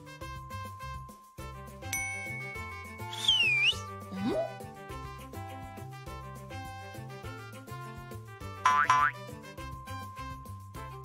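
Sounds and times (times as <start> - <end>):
cartoon background music: 0.0 - 11.0
high held tone: 2.0 - 3.9
swooping whistle sound effect: 3.0 - 4.6.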